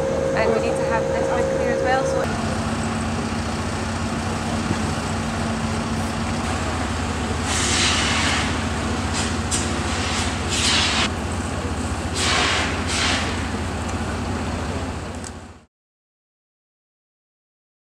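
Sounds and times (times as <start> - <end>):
low engine drone: 0.0 - 15.7
loud hissing bursts: 5.1 - 11.1, 12.0 - 13.6.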